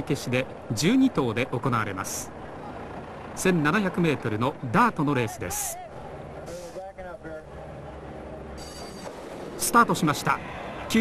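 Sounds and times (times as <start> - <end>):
racetrack background hum: 0.0 - 11.0.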